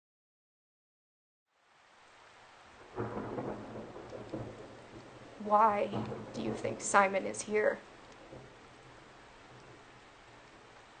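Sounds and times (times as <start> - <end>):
rain: 1.5 - 11.0
low thunder rumble: 2.8 - 11.0.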